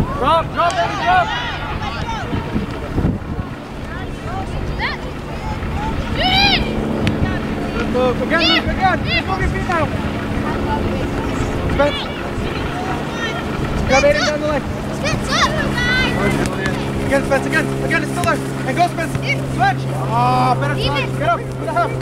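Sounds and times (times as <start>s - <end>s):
wind rumbling on microphone: 0.0s - 0.6s, 1.2s - 22.0s
players shouting: 0.0s - 22.0s.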